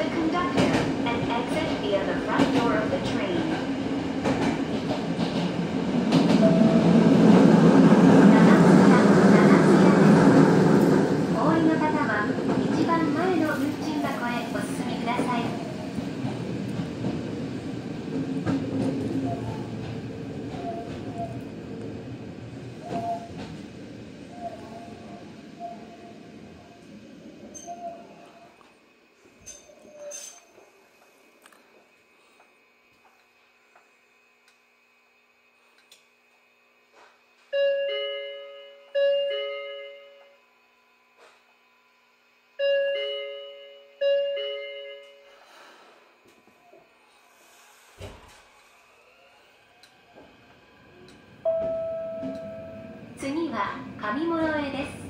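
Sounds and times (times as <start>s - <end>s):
train braking with faint squealing: 6.2s - 16.5s, 18.4s - 21.6s, 22.6s - 28.6s, 29.4s - 30.8s, 46.6s - 55.0s
two-tone door chime: 37.5s - 40.4s, 42.6s - 45.3s, 51.5s - 53.0s.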